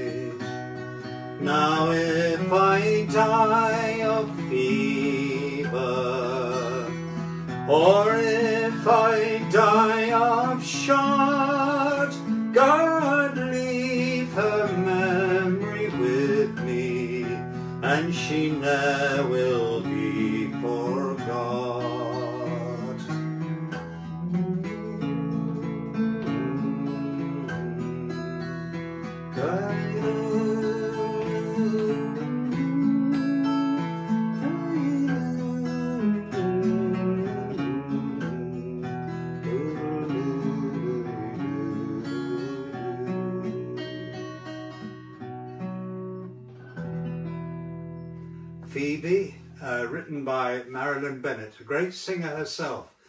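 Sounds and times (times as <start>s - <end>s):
acoustic guitar playing: 0.0s - 53.0s.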